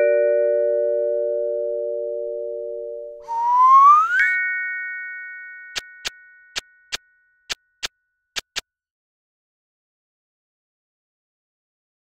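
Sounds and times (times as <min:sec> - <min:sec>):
whistle sliding upward: 0:03.2 - 0:04.5
ringing chime: 0:03.3 - 0:08.3
sharp click: 0:08.4 - 0:08.6.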